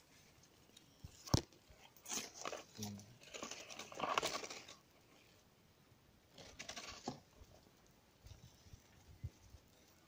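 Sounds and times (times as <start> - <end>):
leaves and twigs rustling: 0.0 - 5.4, 6.3 - 10.0.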